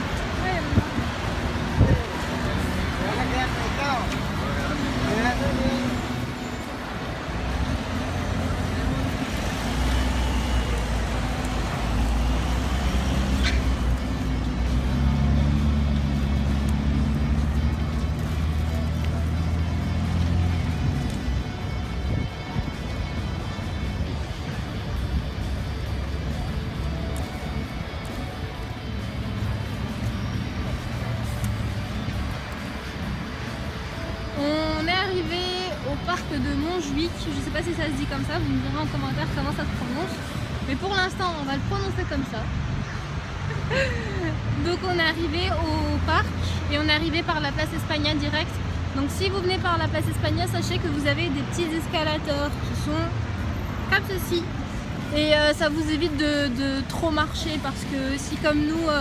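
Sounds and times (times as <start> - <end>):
light background music: 0.0 - 59.0
street traffic passing: 0.0 - 59.0.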